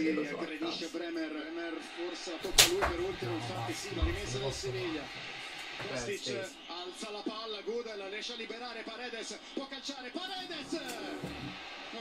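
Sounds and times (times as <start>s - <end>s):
man commentating: 0.0s - 5.2s
crowd noise: 0.0s - 12.0s.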